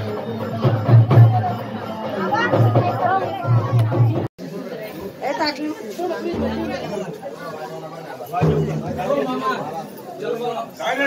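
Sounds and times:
music: 0.0 - 4.3
people talking over one another: 0.0 - 11.0.

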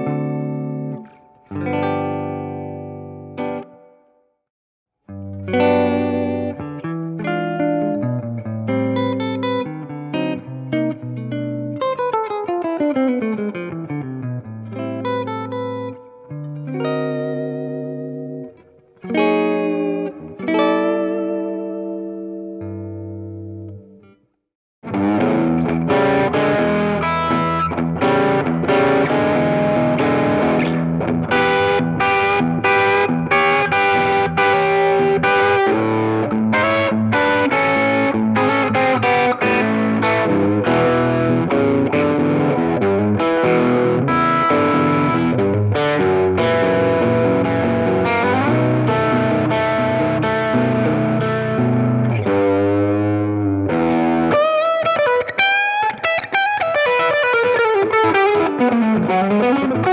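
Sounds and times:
overdriven electric guitar riffs: 0.0 - 4.0, 5.1 - 24.1, 24.8 - 59.9.

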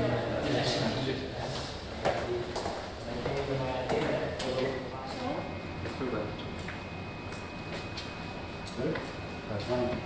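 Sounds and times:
footsteps: 1.4 - 6.0.

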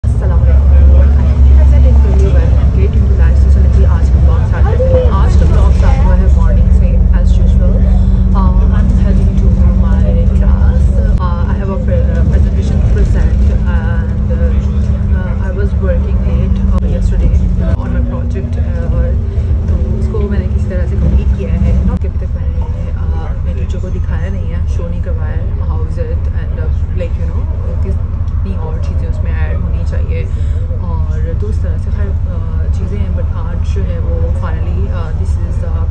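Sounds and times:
bus engine and road rumble: 0.0 - 35.9
droning hum: 0.0 - 35.9
woman talking: 0.0 - 35.9.

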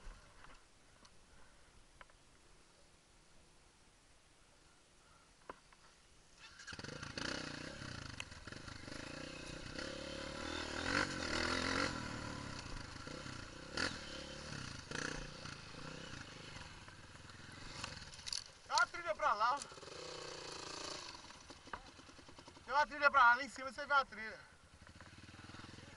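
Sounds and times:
dirt bike engine revving: 6.4 - 23.2, 24.7 - 25.9.

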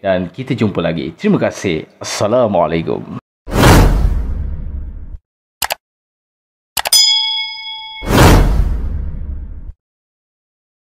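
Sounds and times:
bell ding: 6.9 - 8.4.

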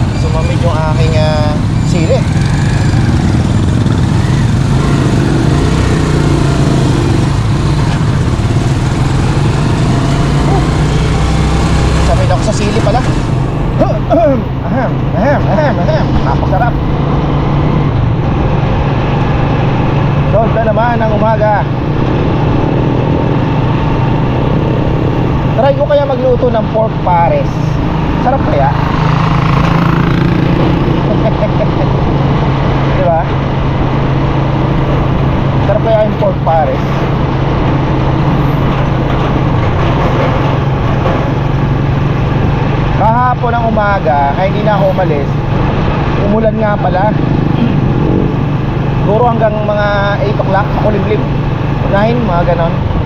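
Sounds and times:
motorcycle engine cruising: 0.0 - 53.0
wind and road noise: 0.0 - 53.0.

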